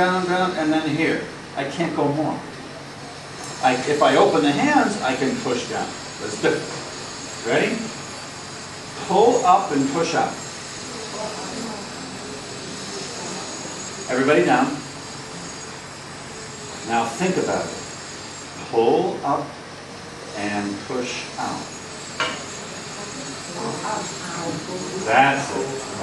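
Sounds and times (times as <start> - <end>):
room tone hiss: 0.0 - 26.0
faint distant voices murmuring: 10.8 - 14.0.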